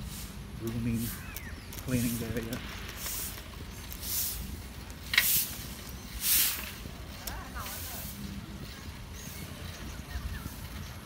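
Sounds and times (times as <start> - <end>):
short hissing bursts: 0.0 - 7.0
wind buffeting microphone: 0.0 - 11.0.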